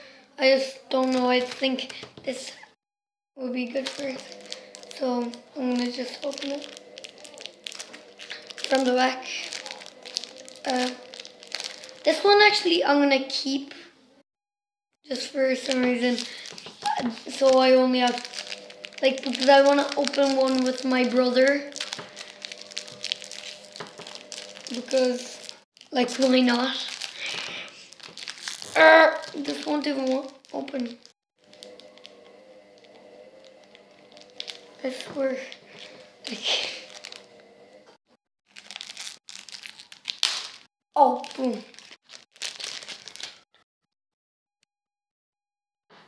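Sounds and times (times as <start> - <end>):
foil packet crinkling: 0.9 - 2.5, 3.5 - 12.7, 15.1 - 37.4, 38.5 - 43.4.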